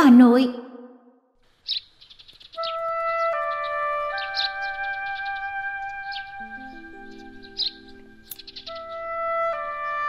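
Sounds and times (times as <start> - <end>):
birds chirping: 1.5 - 10.0
soft flute-like music: 2.6 - 10.0.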